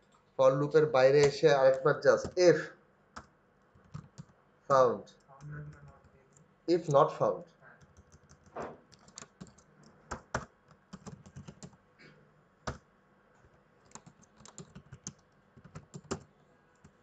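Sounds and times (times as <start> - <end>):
computer keyboard typing: 3.2 - 4.4, 5.1 - 6.2, 7.8 - 11.8, 12.6 - 12.8, 13.8 - 17.0.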